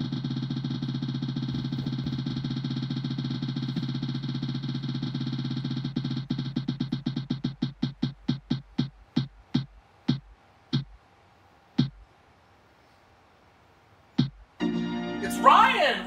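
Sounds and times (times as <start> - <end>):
electronic spinning wheel ticks: 0.0 - 10.9.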